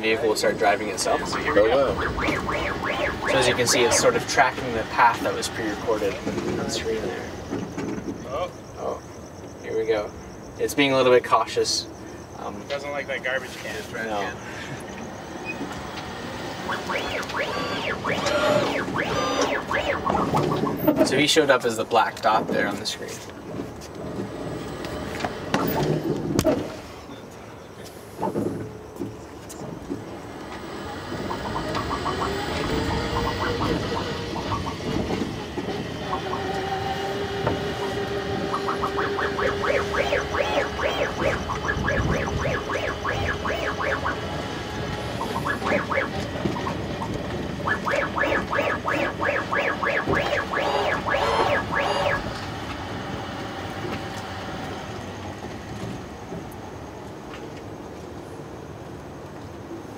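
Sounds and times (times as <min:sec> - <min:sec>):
electric motor whine: 0:16.1 - 0:20.3
rapid rattling ticks: 0:38.4 - 0:52.5.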